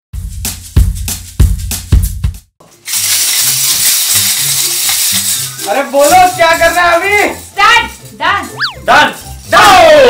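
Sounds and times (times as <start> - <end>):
music track with bass line: 0.2 - 2.5.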